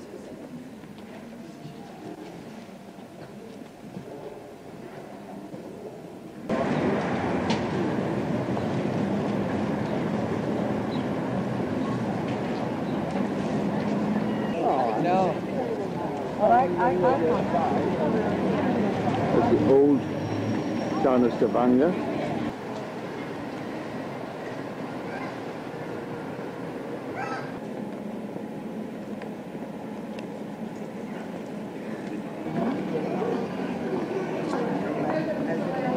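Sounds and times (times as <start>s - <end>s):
market crowd din: 0.0s - 35.9s
street noise: 0.0s - 35.9s.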